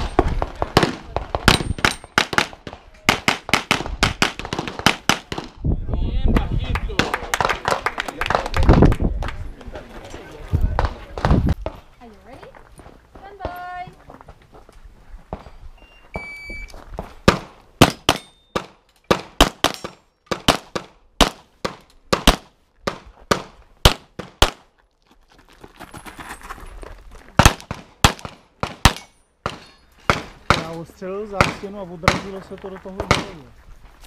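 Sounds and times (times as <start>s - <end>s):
shot timer beep: 15.8s - 16.7s
pistol shots: 27.4s - 30.8s.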